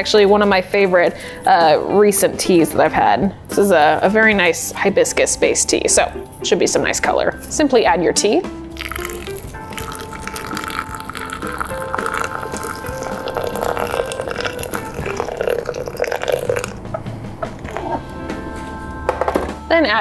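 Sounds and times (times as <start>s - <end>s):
background music: 0.0s - 20.0s
water pouring from kettle into glass: 8.8s - 16.8s.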